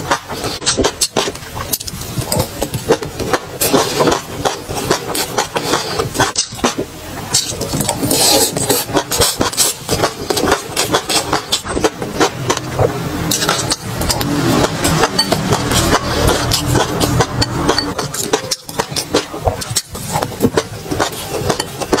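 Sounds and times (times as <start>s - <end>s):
chewing food: 0.6s - 22.0s.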